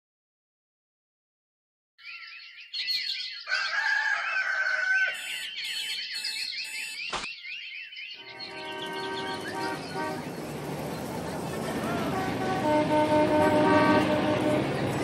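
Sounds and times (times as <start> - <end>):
birds chirping: 2.0 - 15.0
alarm clock beeping: 5.2 - 7.1
steady horn-like tone: 8.2 - 10.4, 11.8 - 14.8
traffic noise: 8.2 - 15.0.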